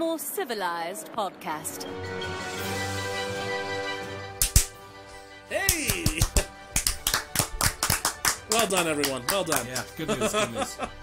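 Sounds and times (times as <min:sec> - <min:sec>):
background music with held tones: 0:01.6 - 0:11.0
hand claps: 0:04.4 - 0:04.8, 0:05.6 - 0:10.0.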